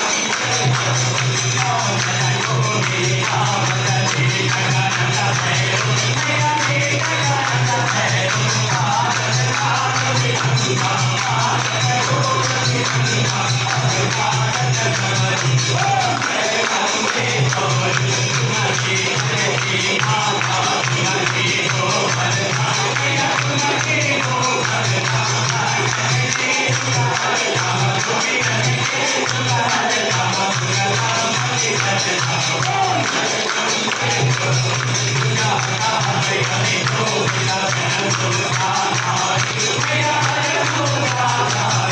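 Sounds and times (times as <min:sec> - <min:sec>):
crowd singing devotional music: 0:00.0 - 0:41.9
rhythmic jingling percussion: 0:00.0 - 0:41.9.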